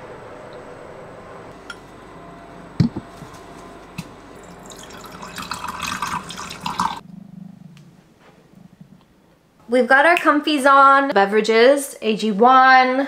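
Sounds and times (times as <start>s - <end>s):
water pouring into vessel: 4.4s - 7.0s.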